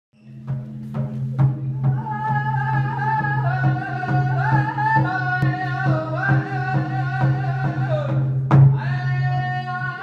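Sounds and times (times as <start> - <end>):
drum struck steadily: 0.4 - 9.2.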